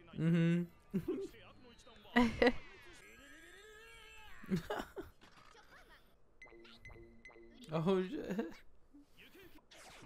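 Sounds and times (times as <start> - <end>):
laughter: 2.2 - 3.0, 4.4 - 5.2.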